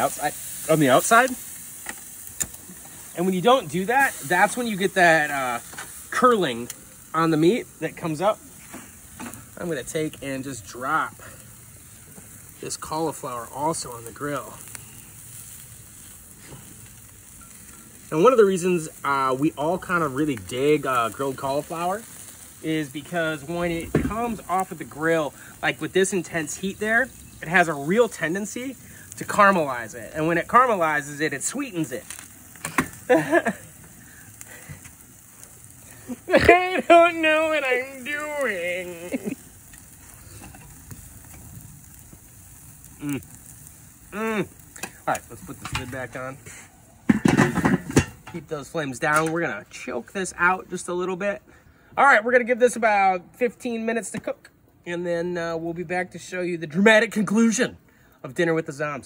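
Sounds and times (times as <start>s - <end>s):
faint crackles: 0.0s - 51.9s
food sizzling on a grill: 0.0s - 59.0s.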